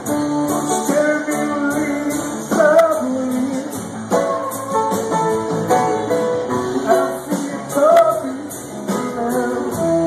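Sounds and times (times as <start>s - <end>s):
drums with cymbal strokes: 0.0s - 10.0s
electric guitars: 0.0s - 10.0s
keyboard: 0.0s - 10.0s.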